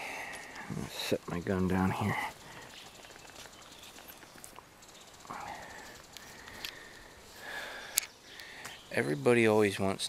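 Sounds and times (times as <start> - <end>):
faint clicks: 2.7 - 7.1, 7.9 - 8.8.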